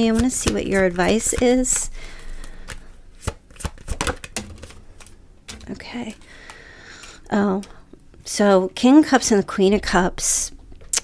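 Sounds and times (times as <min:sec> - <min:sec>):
cards tapping and snapping: 0:00.0 - 0:07.2.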